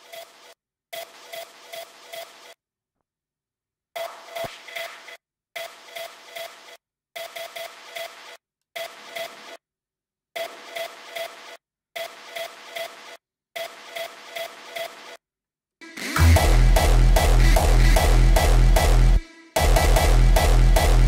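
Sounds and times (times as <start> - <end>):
hardstyle music snippets: 15.8 - 21.0.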